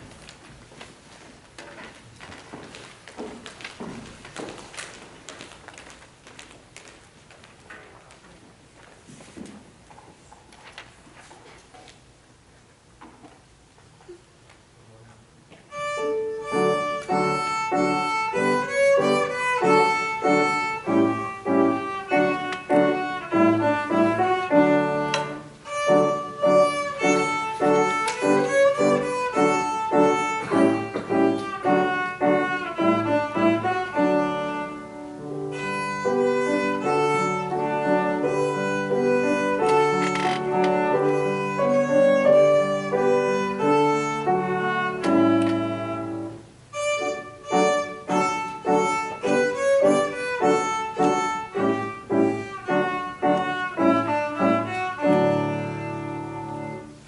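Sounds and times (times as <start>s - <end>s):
piano accompaniment: 0.0s - 8.6s, 15.7s - 57.0s
viola melody: 15.7s - 57.0s.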